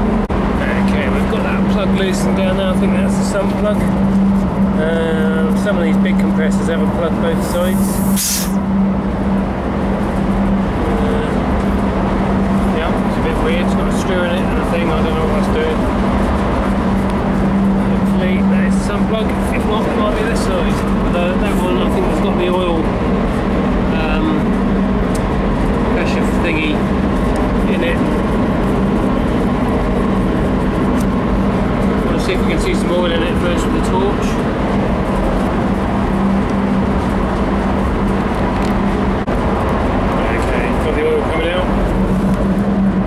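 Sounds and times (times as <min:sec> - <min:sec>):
machinery drone: 0:00.0 - 0:43.0.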